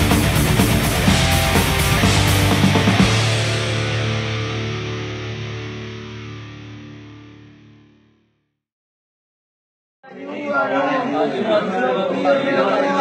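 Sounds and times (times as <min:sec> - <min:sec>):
distorted electric guitar chord: 0:00.0 - 0:08.4.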